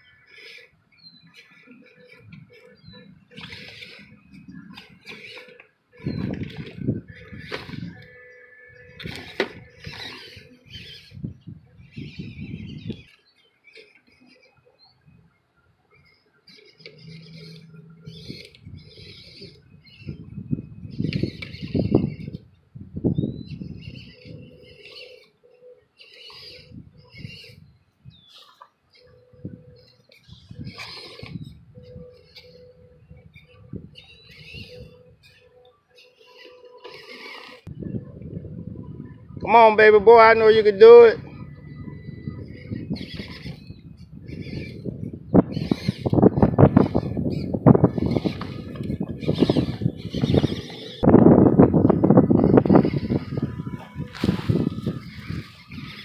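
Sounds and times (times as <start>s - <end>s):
toy truck motor whine: 0.0s - 15.4s, 16.0s - 37.8s, 40.8s - 56.0s.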